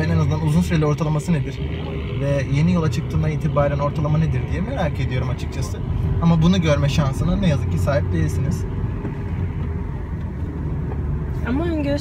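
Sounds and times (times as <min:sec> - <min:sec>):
car engine and road rumble: 0:00.0 - 0:12.0.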